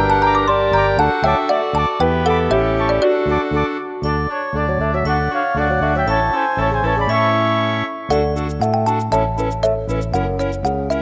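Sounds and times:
light tune over bass line: 0.0s - 11.0s.

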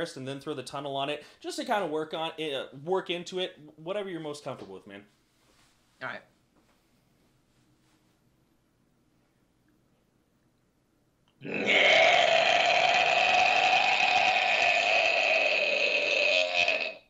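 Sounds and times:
man screaming distorted note: 11.4s - 17.0s.

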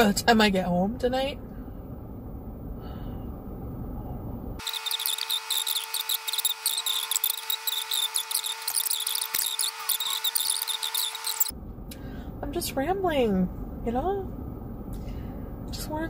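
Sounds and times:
steady whine: 1.8s - 12.5s
sped-up squeaky voice chatter: 4.6s - 11.5s
low rumble inside a car: 11.6s - 16.0s.

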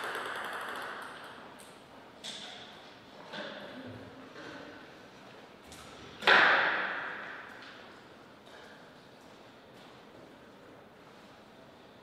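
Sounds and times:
sharp thump echoing in a hall: 5.7s - 7.9s.

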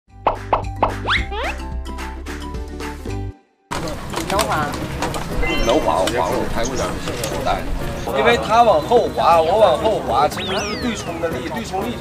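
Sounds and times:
bass-heavy music bed: 0.1s - 9.3s
cartoon plop effects: 0.2s - 1.6s
rising slide notes: 0.3s - 1.9s, 4.9s - 7.6s.

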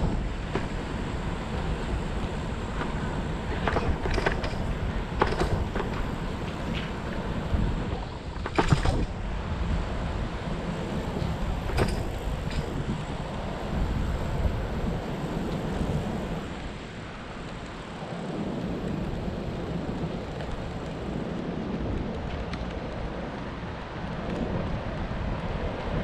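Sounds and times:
low rumble of bicycle riding: 0.0s - 26.0s
wind buffeting microphone: 0.0s - 26.0s.

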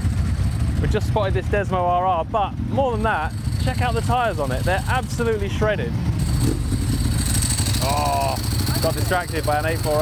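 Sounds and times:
motorcycle engine running: 0.0s - 10.0s
man speaking: 0.8s - 6.0s, 7.8s - 10.0s.

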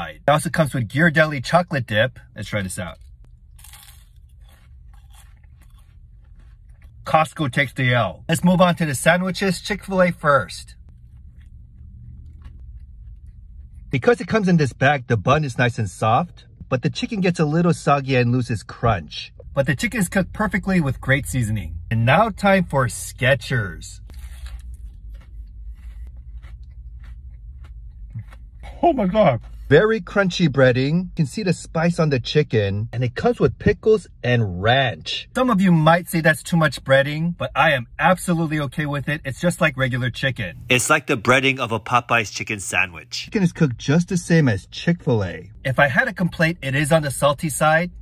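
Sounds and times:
low steady hum: 0.0s - 48.0s
biting into crunchy churro: 2.6s - 7.0s, 10.9s - 13.9s, 24.1s - 28.6s
crunchy chewing: 2.6s - 7.1s, 10.8s - 13.9s, 24.1s - 28.7s.

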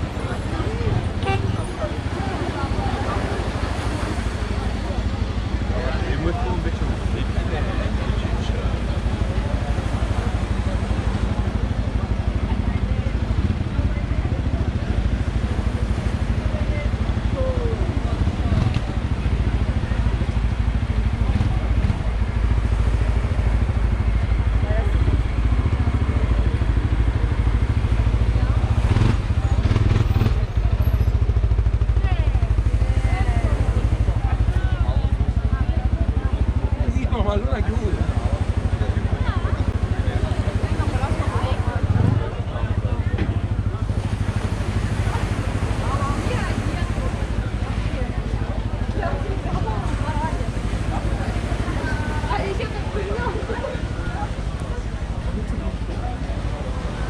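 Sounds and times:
crowd chatter: 0.0s - 57.0s
engine idling: 0.0s - 57.0s.

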